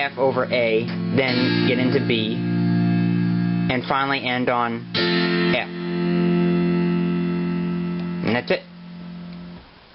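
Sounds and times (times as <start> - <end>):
electronic keyboard sustained chord: 0.0 - 9.6.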